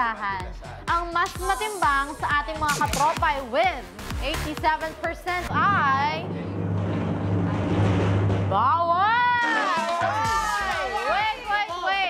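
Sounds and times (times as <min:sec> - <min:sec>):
low rumbling suspense music: 0:05.5 - 0:09.0.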